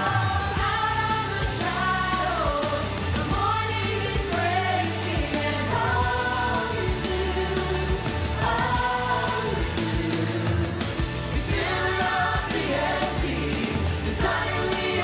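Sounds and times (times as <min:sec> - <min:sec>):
backing music with bass chords: 0:00.0 - 0:15.0
voices singing a show tune: 0:00.0 - 0:15.0.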